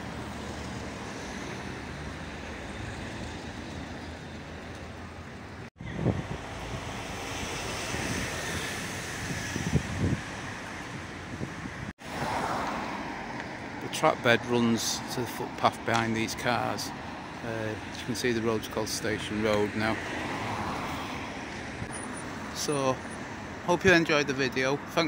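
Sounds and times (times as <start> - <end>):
road traffic: 0.0 - 25.0
wind buffeting microphone: 5.8 - 11.9.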